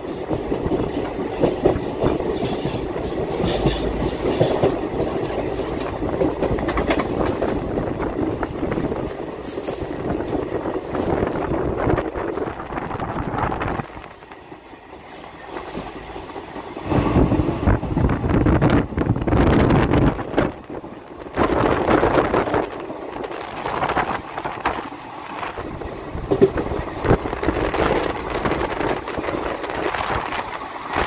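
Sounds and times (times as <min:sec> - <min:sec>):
wind rushing past microphone: 0:00.0 - 0:14.6, 0:15.4 - 0:31.0
train wheels on rails: 0:00.0 - 0:31.0.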